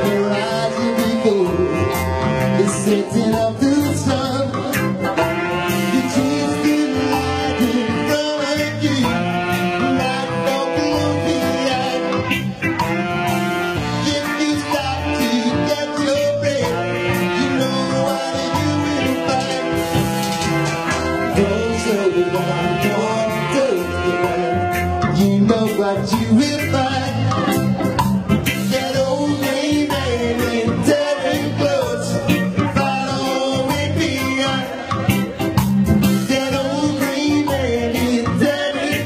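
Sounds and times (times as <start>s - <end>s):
live band playing guitar music: 0.0s - 39.0s.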